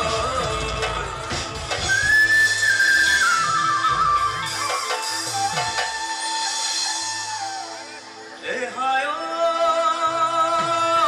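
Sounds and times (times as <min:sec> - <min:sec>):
live band playing: 0:00.0 - 0:11.0
flute playing high notes: 0:01.8 - 0:08.4.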